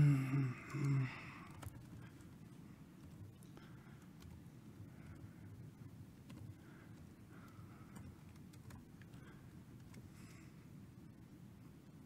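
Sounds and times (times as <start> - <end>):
man murmuring: 0.0 - 1.3
faint keyboard clicks: 0.4 - 5.3, 6.2 - 10.4.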